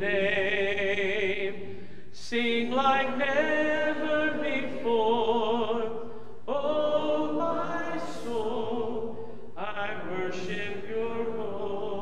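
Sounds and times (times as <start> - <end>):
slow worship singing: 0.0 - 12.0.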